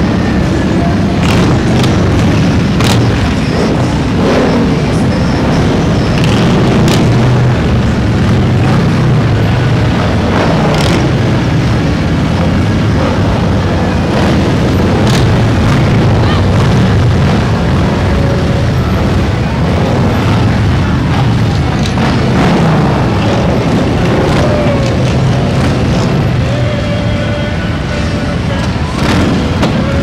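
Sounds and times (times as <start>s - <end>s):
motorcycle engines rumbling: 0.0s - 30.0s.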